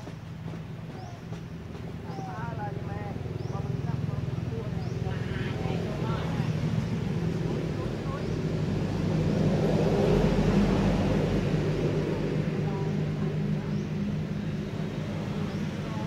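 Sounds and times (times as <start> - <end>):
low engine hum: 0.0 - 16.0.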